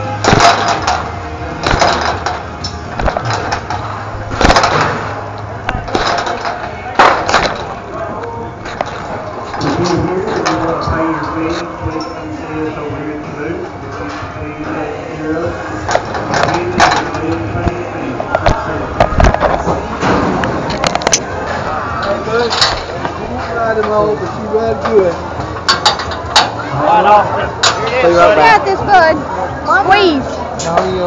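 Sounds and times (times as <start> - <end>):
indistinct voices: 0.0 - 31.0
sharp knocks and metal clanks: 0.2 - 7.8, 15.9 - 21.3, 25.5 - 26.6.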